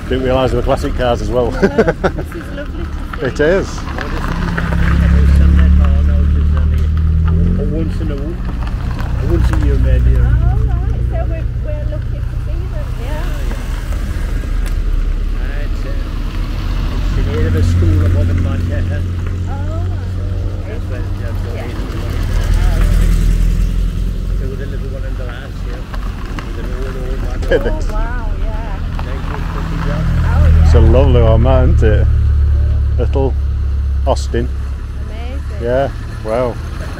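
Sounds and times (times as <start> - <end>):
cars driving slowly past: 0.0 - 36.9.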